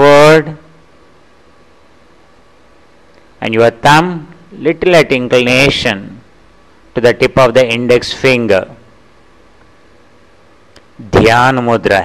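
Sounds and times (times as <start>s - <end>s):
low background hiss: 0.0s - 12.0s.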